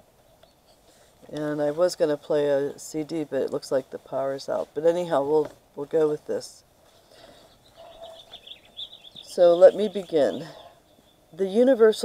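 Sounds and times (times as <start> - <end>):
songbirds chirping: 0.0 - 12.0.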